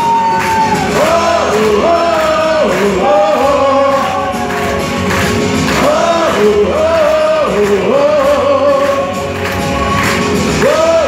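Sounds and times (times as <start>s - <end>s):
man singing a long high note: 0.0s - 4.8s, 5.8s - 9.4s, 10.6s - 11.0s
live band music: 0.0s - 11.0s.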